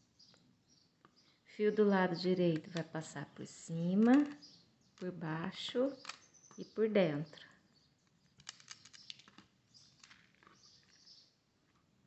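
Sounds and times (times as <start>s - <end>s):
small plastic clicks: 3.9s - 5.1s, 6.0s - 6.6s, 8.0s - 11.2s
cord rustling: 7.8s - 11.9s.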